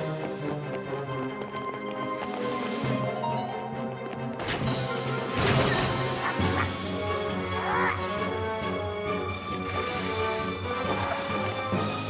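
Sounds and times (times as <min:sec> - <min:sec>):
tense cartoon film score: 0:00.0 - 0:12.0.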